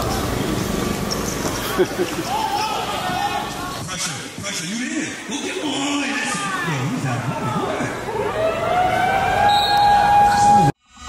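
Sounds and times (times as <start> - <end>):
rising siren tone: 8.1 - 10.8.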